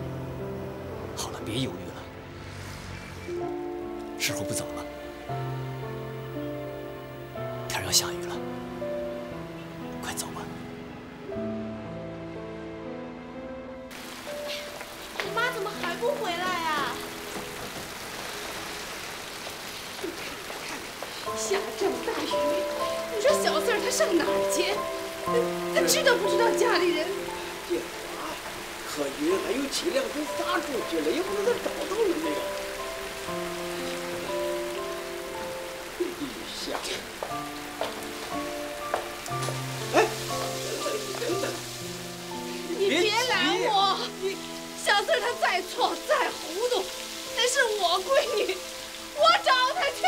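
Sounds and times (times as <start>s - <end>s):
soft background score: 0.0s - 50.0s
steady rain falling: 0.0s - 50.0s.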